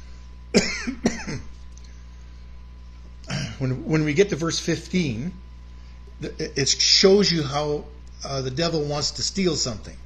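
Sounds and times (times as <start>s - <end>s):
man coughing: 0.6s - 1.5s, 3.3s - 3.6s.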